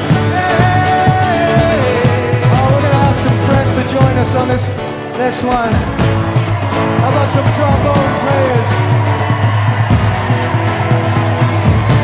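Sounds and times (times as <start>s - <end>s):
bass line: 0.0s - 4.8s
drums: 0.0s - 12.0s.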